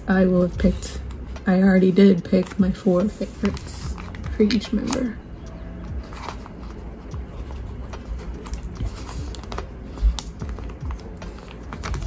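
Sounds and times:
plastic rustling: 0:05.8 - 0:12.0.

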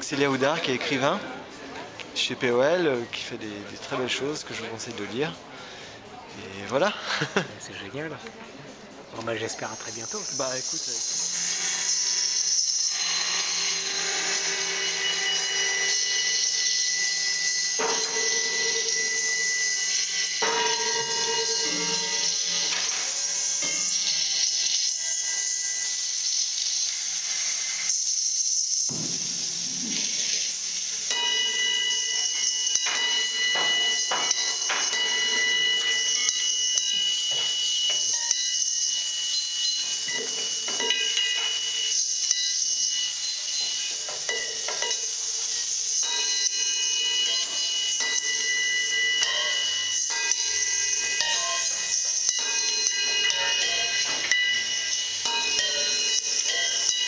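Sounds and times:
steady high electronic tones: 0:09.3 - 0:28.9, 0:29.6 - 0:57.0
hissing electronic noise texture: 0:09.3 - 0:57.0.

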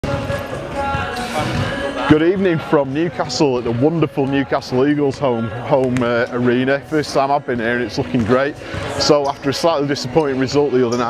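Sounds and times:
basketballs bouncing on hardwood: 0:00.0 - 0:01.0
background music: 0:00.0 - 0:11.0.

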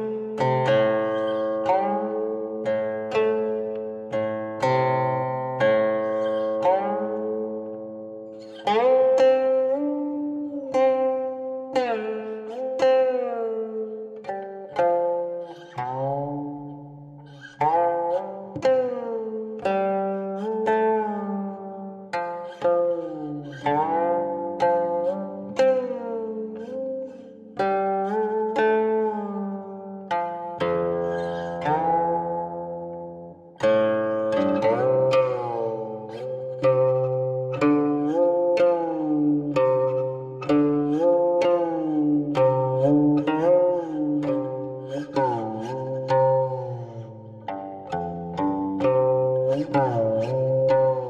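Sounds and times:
plucked zither melody: 0:00.0 - 0:51.0.

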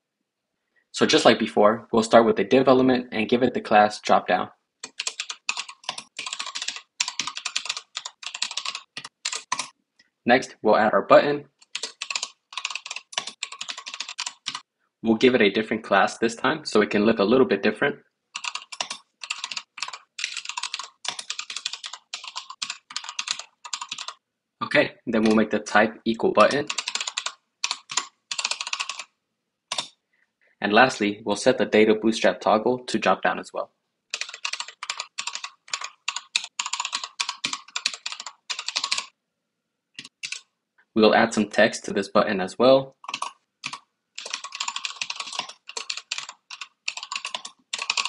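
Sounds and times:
typing on computer keyboard: 0:04.8 - 0:09.8, 0:11.6 - 0:14.7, 0:18.4 - 0:24.2, 0:26.4 - 0:29.1, 0:29.7 - 0:30.0, 0:34.1 - 0:39.1, 0:40.0 - 0:40.5, 0:43.0 - 0:48.0.

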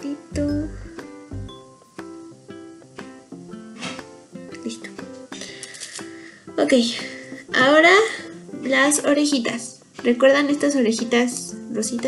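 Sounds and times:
person speaking: 0:00.0 - 0:01.0
plucked strings tune: 0:00.3 - 0:02.1.

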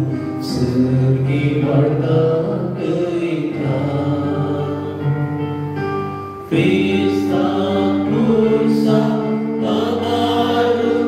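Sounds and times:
voices singing slow chant: 0:06.5 - 0:11.0.

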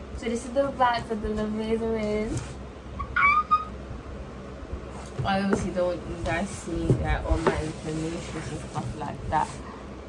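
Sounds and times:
woman squealing excitedly: 0:03.0 - 0:03.8.

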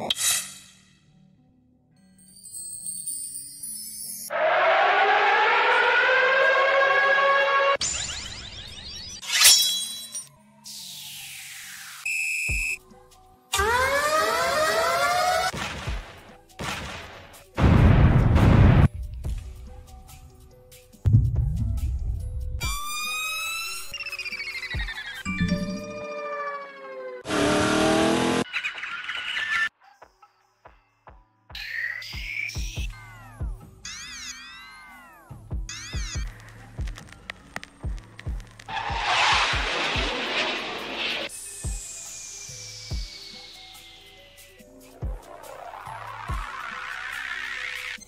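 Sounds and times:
synthesized siren-like tone rising: 0:04.3 - 0:09.2, 0:13.6 - 0:15.5, 0:22.7 - 0:28.4, 0:38.7 - 0:41.3.

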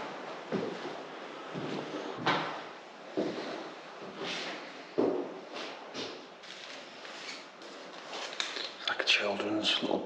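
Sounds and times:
heavy footsteps on wooden floor: 0:00.1 - 0:06.2.

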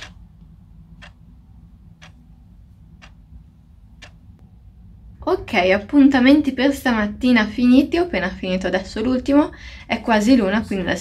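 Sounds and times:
clock ticking: 0:00.0 - 0:04.5
low steady hum: 0:00.0 - 0:11.0.

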